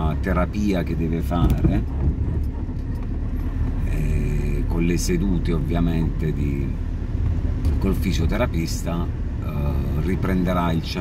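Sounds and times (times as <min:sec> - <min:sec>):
car interior engine and road noise: 0:00.0 - 0:11.0.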